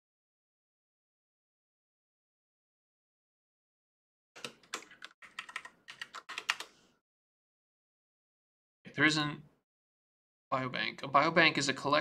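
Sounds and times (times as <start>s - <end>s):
computer keyboard typing: 4.4s - 6.8s.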